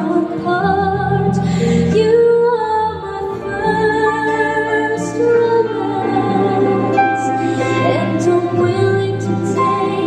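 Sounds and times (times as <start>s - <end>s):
live concert music: 0.0s - 10.0s.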